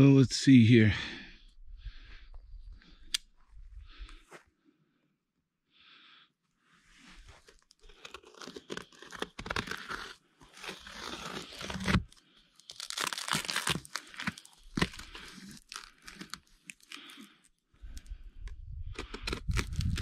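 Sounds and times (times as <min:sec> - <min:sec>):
tape crinkling and ripping: 0:07.4 - 0:17.5, 0:19.0 - 0:20.0.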